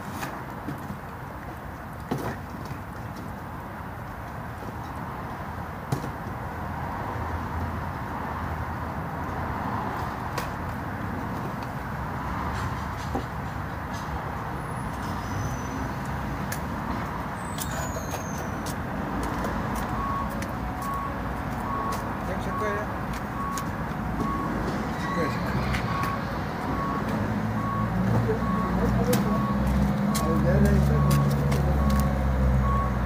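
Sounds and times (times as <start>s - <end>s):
vehicle engine rumble: 0.0s - 33.0s
reversing alarm beeping: 19.9s - 33.0s.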